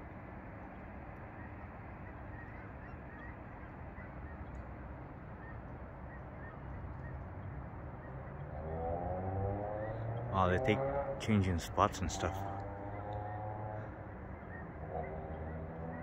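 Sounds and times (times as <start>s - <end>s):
geese honking: 1.2s - 8.7s, 9.7s - 16.0s.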